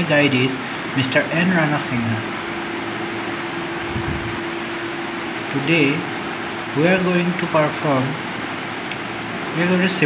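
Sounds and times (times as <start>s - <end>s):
constant low hum: 0.0s - 10.0s
steady background hiss: 0.0s - 10.0s.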